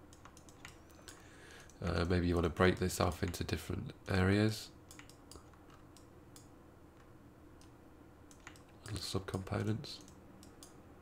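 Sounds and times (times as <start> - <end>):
keyboard typing clicks: 0.0 - 1.8, 4.8 - 10.8.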